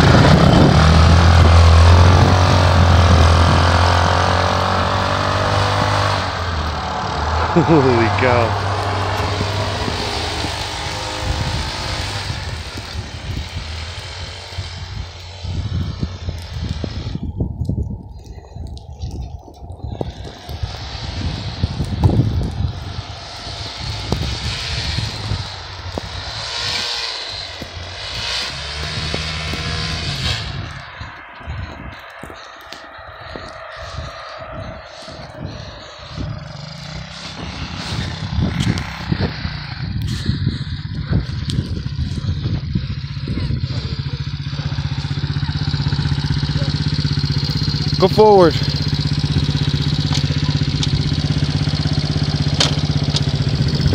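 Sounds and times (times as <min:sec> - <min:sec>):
atv engine revving: 0:00.0 - 0:17.4, 0:20.0 - 0:53.9.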